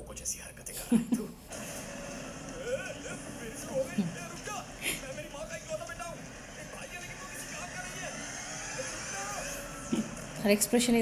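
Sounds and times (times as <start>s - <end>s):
faint dialogue: 0.0s - 11.0s
faint high whine: 1.5s - 11.0s
lift hoist machinery running: 1.5s - 11.0s.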